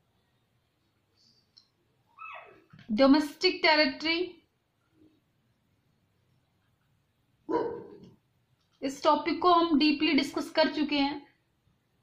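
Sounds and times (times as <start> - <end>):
dog bark: 7.5 - 8.1.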